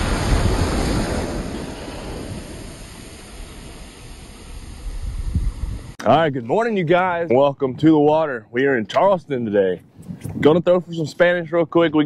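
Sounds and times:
waves breaking on beach: 0.0s - 4.9s.

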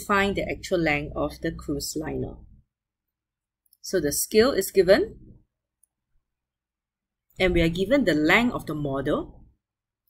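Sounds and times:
person speaking: 7.3s - 9.4s.

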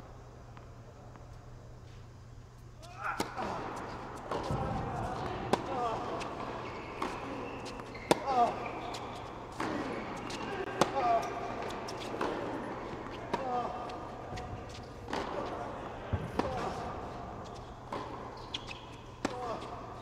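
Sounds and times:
shoes squealing on court: 2.8s - 12.3s, 17.4s - 19.8s
tennis ball hits: 3.2s - 8.7s, 9.5s - 12.6s
tennis ball bouncing: 3.2s - 19.8s.

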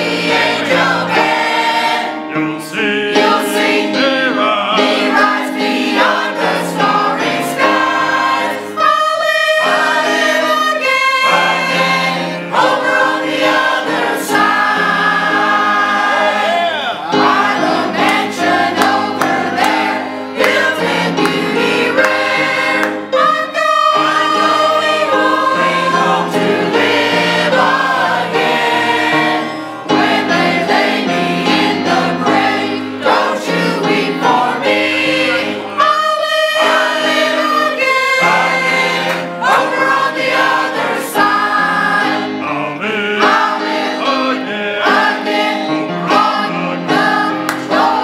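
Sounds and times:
mixed choir singing: 0.0s - 48.0s.

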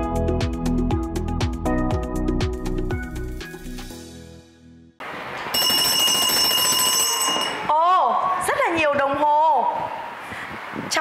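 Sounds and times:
electronic alarm bell ringing: 5.5s - 7.7s.

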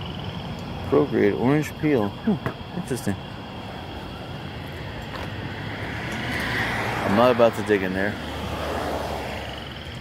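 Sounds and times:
vehicle passing: 0.0s - 10.0s.

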